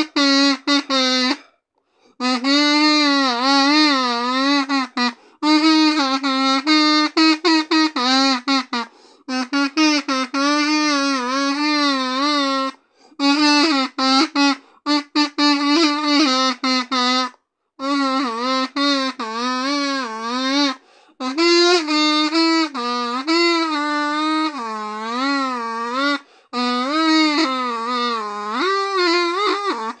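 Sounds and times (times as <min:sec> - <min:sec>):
kazoo melody: 0:00.0 - 0:30.0.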